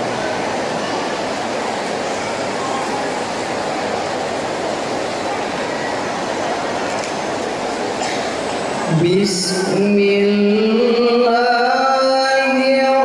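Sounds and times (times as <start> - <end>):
crowded hall background noise: 0.0 - 13.0.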